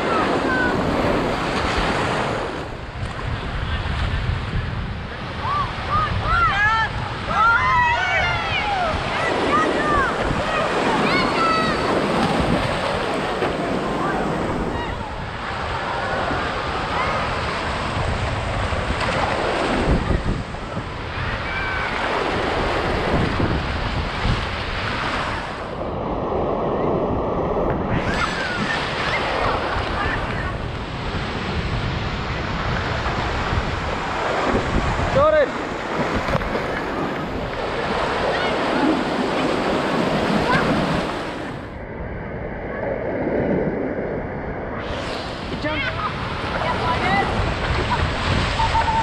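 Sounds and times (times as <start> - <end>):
surf washing in shallows: 0.0 - 49.0
wind buffeting microphone: 0.0 - 49.0
child shouting: 5.9 - 11.9
distant children shouting: 21.1 - 22.1.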